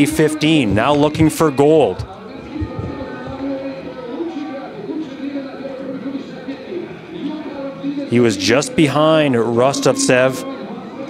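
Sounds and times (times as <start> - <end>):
background voices: 0.0 - 6.4
commentary: 0.0 - 11.0
low knocks: 2.4 - 3.6.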